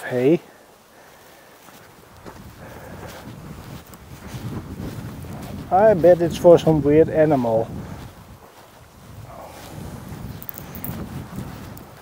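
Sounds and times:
footsteps through dry heather: 0.0s - 12.0s
wind rumbling on microphone: 1.8s - 12.0s.

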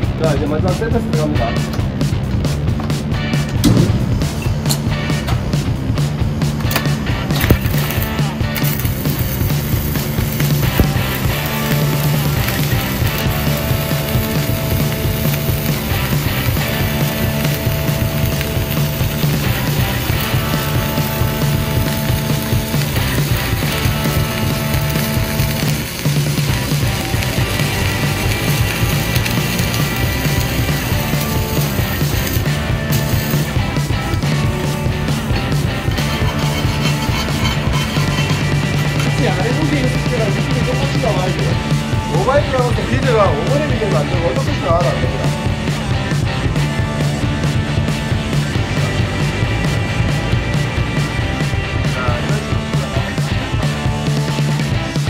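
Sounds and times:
background music: 0.0s - 55.0s
welding arc crackling: 3.4s - 55.0s.

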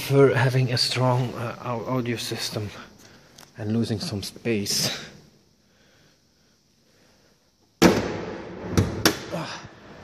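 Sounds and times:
loud thump: 7.8s - 9.4s.

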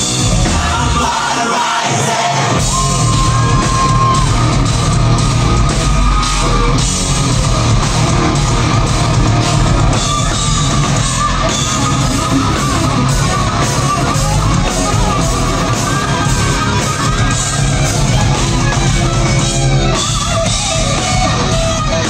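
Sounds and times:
heavy metal band playing live: 0.0s - 22.0s.

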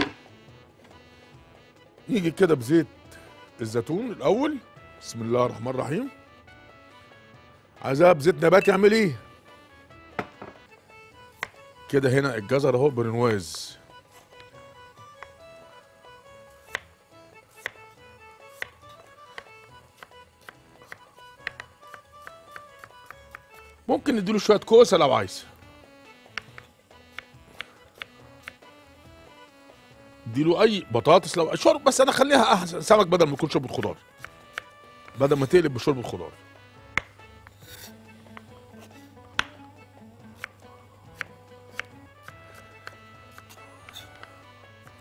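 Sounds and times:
knife chopping on wooden board: 0.0s - 0.3s, 10.1s - 10.7s, 11.4s - 11.6s, 15.2s - 15.4s, 16.6s - 16.9s, 17.6s - 17.9s, 18.5s - 23.6s, 26.3s - 28.6s, 34.1s - 35.2s, 36.8s - 39.7s, 40.4s - 45.0s
soft instrumental music: 0.0s - 45.0s.

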